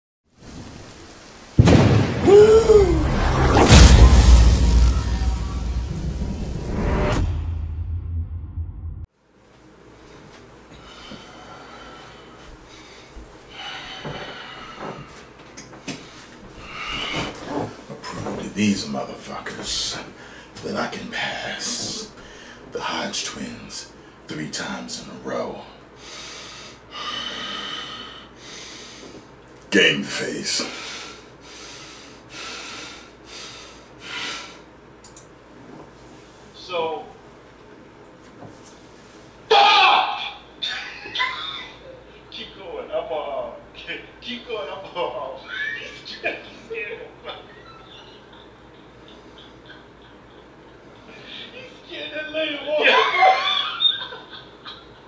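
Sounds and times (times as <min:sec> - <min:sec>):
rain hissing: 0:00.3 - 0:06.9
thunder crack and rumble: 0:01.6 - 0:09.1.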